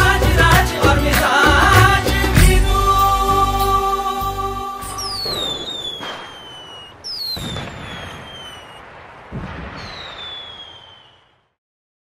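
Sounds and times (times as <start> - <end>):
falling firework whistle: 4.9 - 11.6
firework bangs: 5.0 - 11.6.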